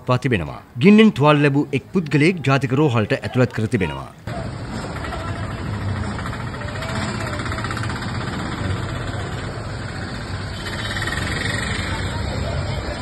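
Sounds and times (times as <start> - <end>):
street noise: 0.0 - 13.0
faint voices: 1.0 - 13.0
vehicle engine idling: 4.3 - 13.0.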